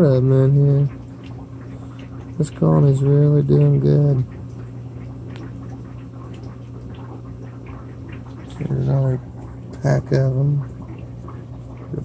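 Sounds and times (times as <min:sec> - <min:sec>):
aquarium filter humming: 0:00.0 - 0:12.0
water ticking: 0:00.0 - 0:12.0.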